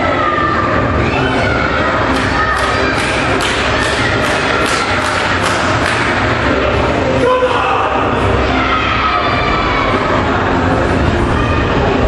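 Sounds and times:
rhythmic pounding: 0.0 - 8.5
crowd noise: 0.0 - 12.0.

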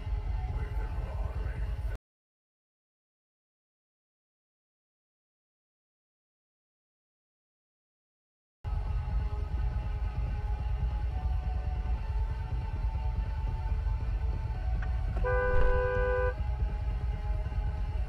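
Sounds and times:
car engine idling: 13.4 - 17.9
car horn honk: 15.2 - 16.4.

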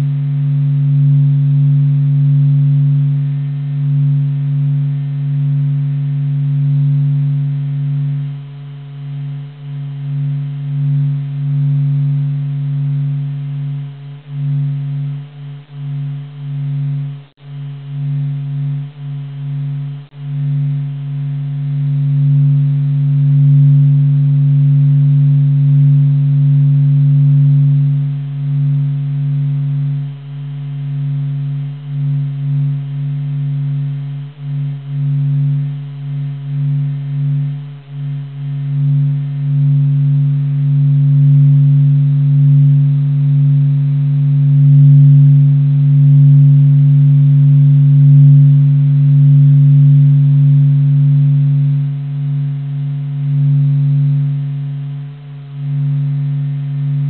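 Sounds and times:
deep steady hum: 0.0 - 57.0.

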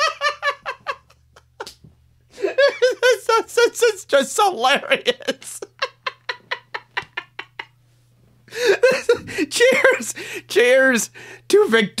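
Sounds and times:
man laughing: 0.0 - 1.7, 2.3 - 4.0, 4.7 - 7.8, 8.5 - 10.3.

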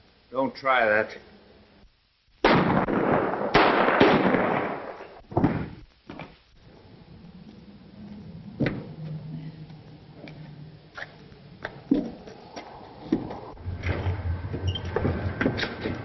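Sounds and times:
gunshots: 2.4 - 5.8
sharp crack: 2.4 - 6.0.

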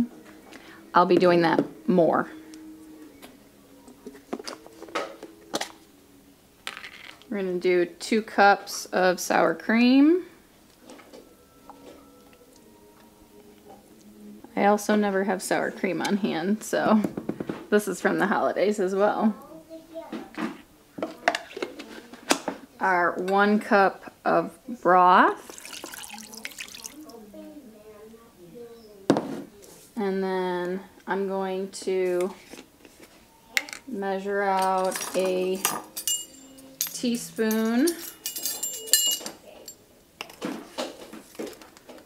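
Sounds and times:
measuring spoons clinking: 34.5 - 39.8.

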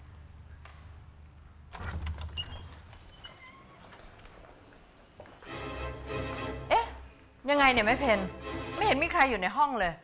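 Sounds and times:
door hinge squeaks: 2.2 - 3.9.

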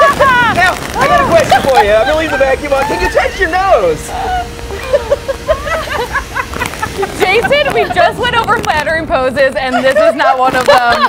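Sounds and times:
vacuum cleaner humming: 0.0 - 11.0.

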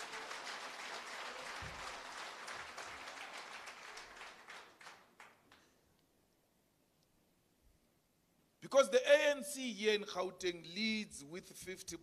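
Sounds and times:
audience applause: 0.0 - 5.6.

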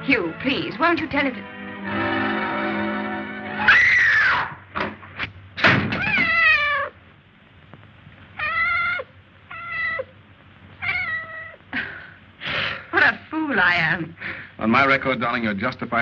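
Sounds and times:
cat meowing: 6.0 - 7.0, 8.4 - 10.2, 10.8 - 11.6.

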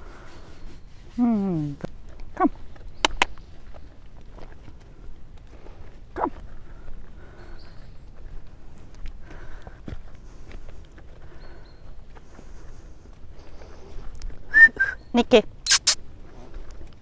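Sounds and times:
hooves on grass: 0.0 - 17.0
whistle: 14.5 - 15.0.

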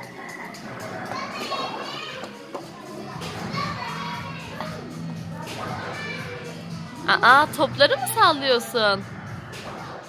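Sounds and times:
children's voices and chatter: 0.0 - 7.2
faint music: 0.0 - 10.0.

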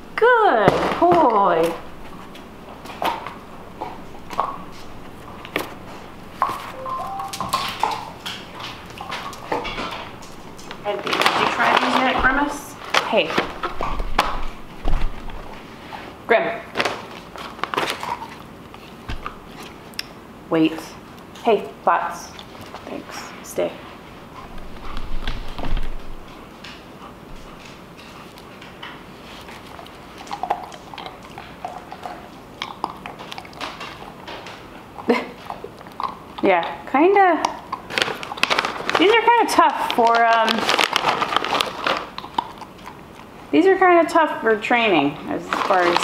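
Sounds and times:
puppy crunching hard treat: 0.7 - 20.2, 24.0 - 44.2, 45.1 - 46.0.

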